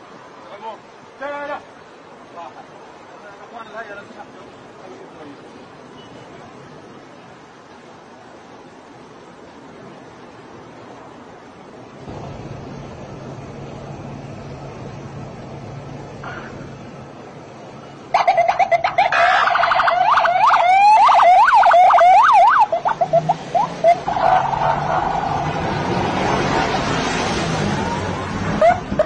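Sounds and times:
steady rushing background noise: 0.0s - 29.0s
police siren: 18.1s - 26.0s, 27.7s - 29.0s.

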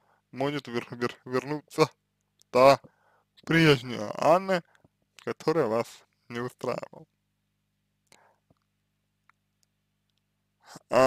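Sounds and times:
man breathing: 0.0s - 0.3s, 2.8s - 3.4s, 8.1s - 8.6s.

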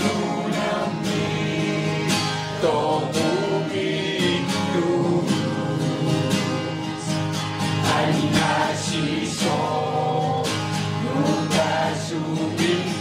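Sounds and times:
group singing: 0.0s - 13.0s
man's lead vocal: 0.0s - 13.0s
strummed acoustic guitar: 0.0s - 13.0s.

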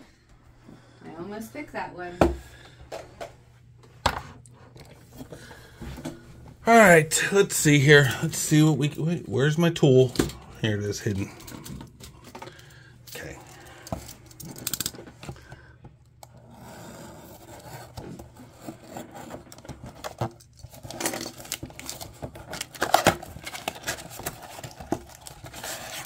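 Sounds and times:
cardboard box opening: 16.4s - 26.0s.

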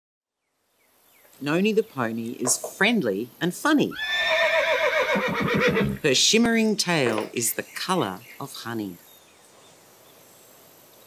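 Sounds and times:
horse whinnying: 3.9s - 6.0s.

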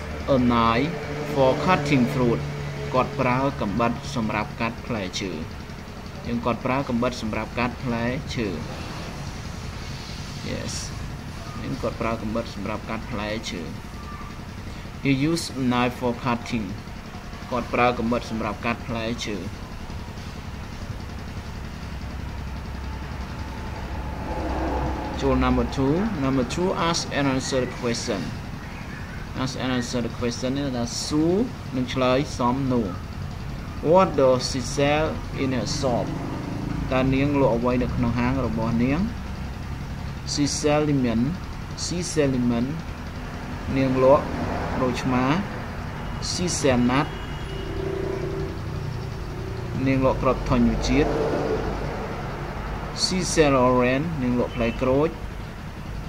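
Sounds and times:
low background hum: 0.0s - 53.0s
faint held tone: 21.5s - 27.8s, 45.9s - 51.6s.

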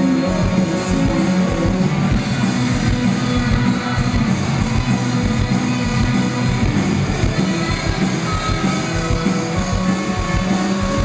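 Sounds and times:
electric guitar: 0.0s - 11.0s
steady drum beat: 0.0s - 11.0s.

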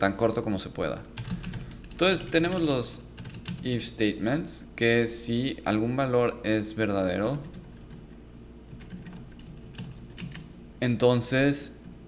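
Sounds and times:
computer keyboard keys clicking: 1.2s - 3.7s, 7.3s - 8.1s, 8.7s - 10.6s.

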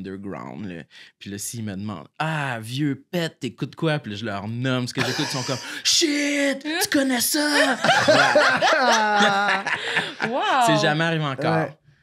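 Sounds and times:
man laughing: 5.0s - 5.8s, 7.4s - 10.9s
woman laughing: 5.0s - 5.8s, 7.5s - 10.9s.

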